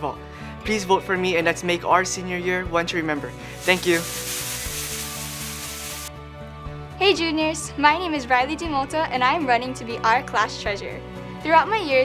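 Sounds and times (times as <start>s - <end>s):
soft background music: 0.0s - 12.0s
plastic pom-poms rustling: 3.5s - 6.1s.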